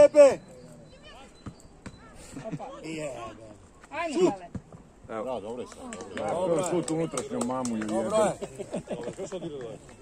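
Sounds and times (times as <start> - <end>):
voices calling out and talking: 0.0 - 10.0.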